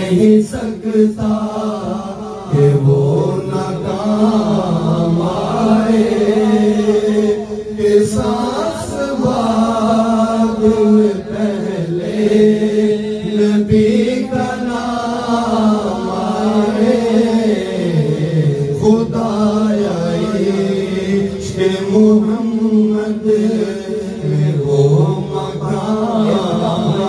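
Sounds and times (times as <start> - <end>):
men chanting through microphones: 0.0 - 27.0.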